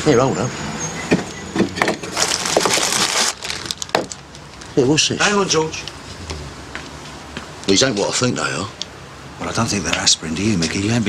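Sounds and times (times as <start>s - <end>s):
plastic bag crinkling: 2.1s - 4.7s.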